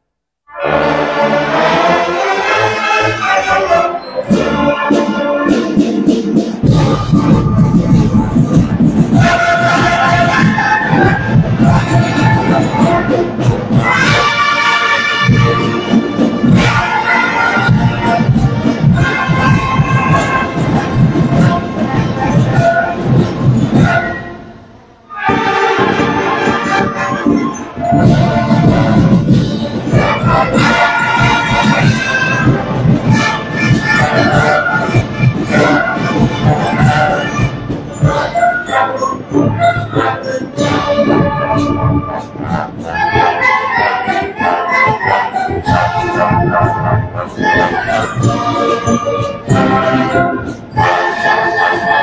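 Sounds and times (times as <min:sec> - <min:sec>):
marching band brass chords: 0:00.5 - 0:52.0
sharp percussion strokes: 0:00.8 - 0:52.0.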